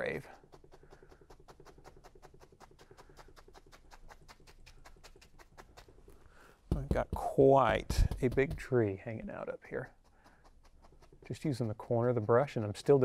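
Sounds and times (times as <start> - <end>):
brush tapping on canvas: 0.0 - 9.0, 9.6 - 13.0.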